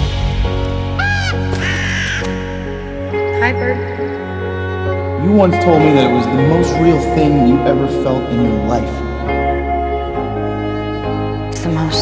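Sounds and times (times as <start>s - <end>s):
background music: 0.0s - 12.0s
crow cawing: 1.0s - 3.3s.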